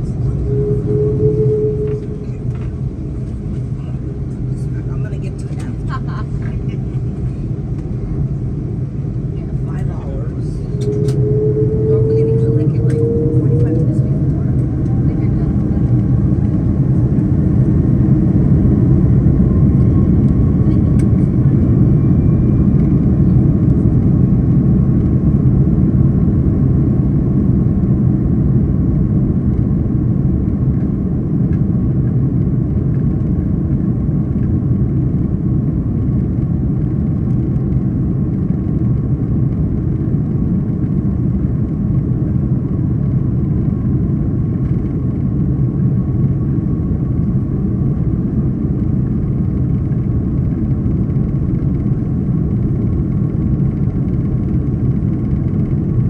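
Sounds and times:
jet engines at takeoff thrust: 0.0s - 56.0s.

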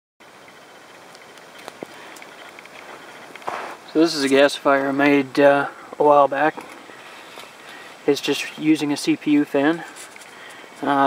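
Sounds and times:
stove burning with blower fan: 0.3s - 11.0s
faint clicks: 0.9s - 3.5s.

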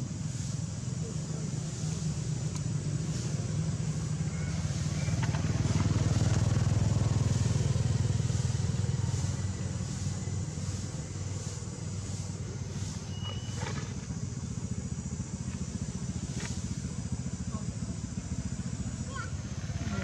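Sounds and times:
vehicle engine passing by: 0.1s - 20.0s.

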